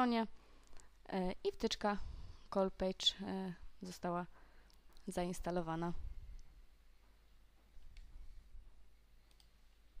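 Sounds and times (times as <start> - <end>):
low steady hum: 0.0 - 10.0
faint computer mouse clicks: 9.2 - 9.6.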